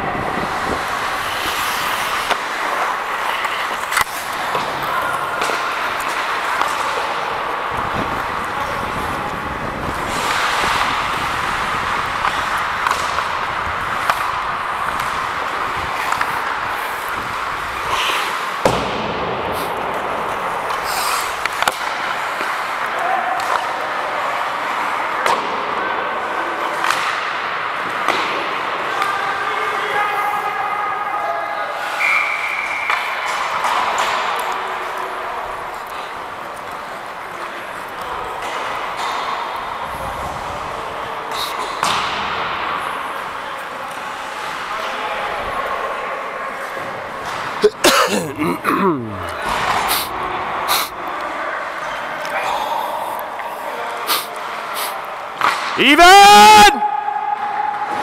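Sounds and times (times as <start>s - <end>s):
skate blades scraping ice: 0.2s - 18.7s, 19.4s - 22.8s.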